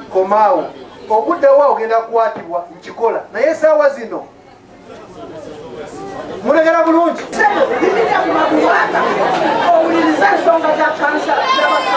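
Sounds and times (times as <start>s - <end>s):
crowd chatter: 0.0s - 11.9s.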